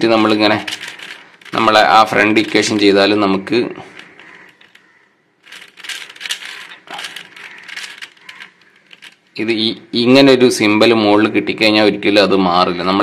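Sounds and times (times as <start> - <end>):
puzzle cube turning and clicking: 0.0 - 3.2, 3.8 - 9.4.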